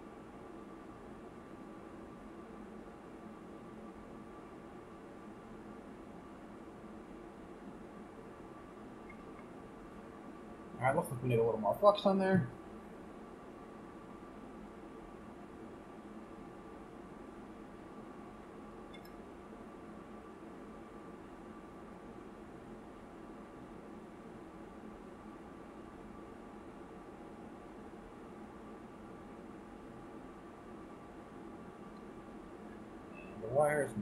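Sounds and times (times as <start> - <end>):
faint hiss: 0.0 - 34.0.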